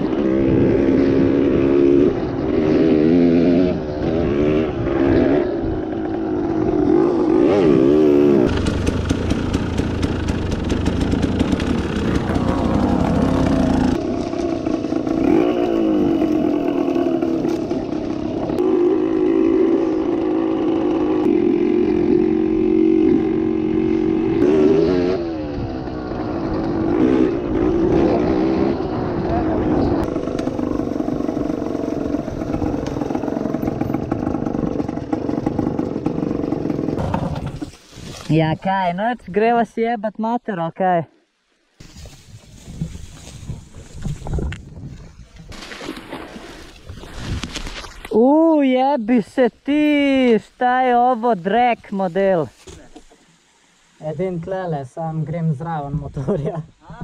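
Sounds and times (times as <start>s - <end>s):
dirt bike engine revving: 0.0s - 37.6s.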